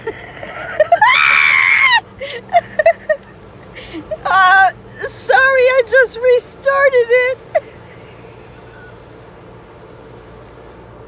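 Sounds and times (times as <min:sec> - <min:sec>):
woman laughing and squealing: 0:00.0 - 0:05.4.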